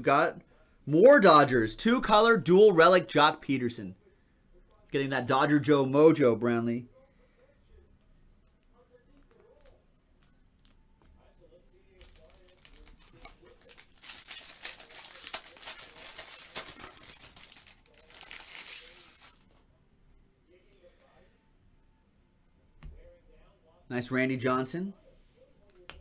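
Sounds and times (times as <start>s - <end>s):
foil wrapper crinkling and tearing: 12.0s - 19.4s.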